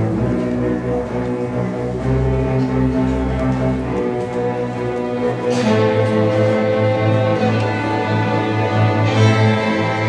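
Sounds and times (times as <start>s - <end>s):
bowed strings holding notes: 0.0s - 10.0s.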